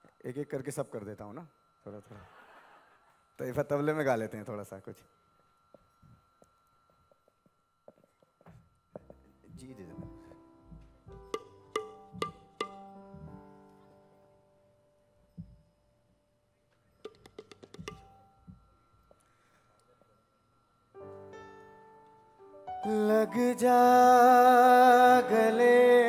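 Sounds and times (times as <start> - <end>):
tuned tablas played softly: 9.6 - 13.4, 17.0 - 18.7.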